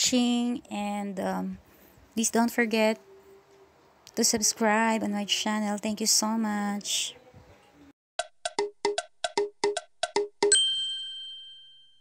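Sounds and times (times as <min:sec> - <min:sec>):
bell-like chime jingle: 0:10.5 - 0:12.0.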